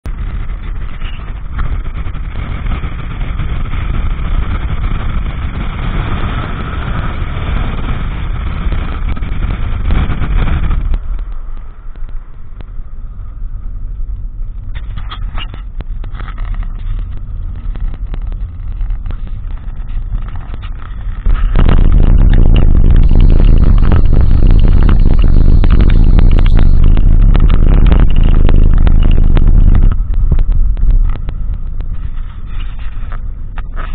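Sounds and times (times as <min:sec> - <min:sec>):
tyres rumbling on gravel road: 0:00.1 - 0:33.9.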